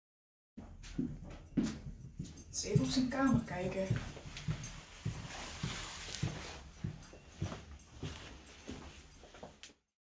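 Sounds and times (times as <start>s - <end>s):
footsteps on wooden stairs: 0.6s - 9.6s.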